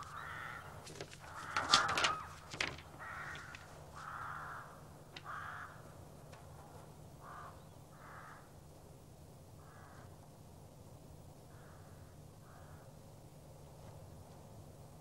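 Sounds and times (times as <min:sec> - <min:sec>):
crows cawing: 0:00.0 - 0:06.1, 0:07.2 - 0:08.6, 0:09.6 - 0:10.1, 0:11.5 - 0:12.9.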